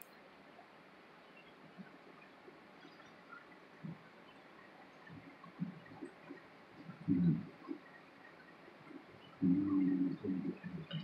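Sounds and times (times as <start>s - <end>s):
man humming: 7.1s - 7.4s, 9.4s - 10.6s.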